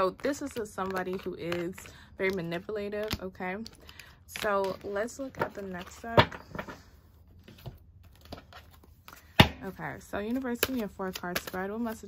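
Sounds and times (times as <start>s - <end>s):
card decks tapping and clicking: 0.3s - 6.8s.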